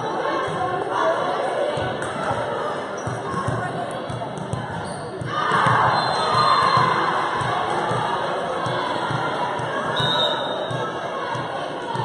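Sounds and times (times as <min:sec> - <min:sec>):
crowd cheering and shouting: 0:05.2 - 0:12.0.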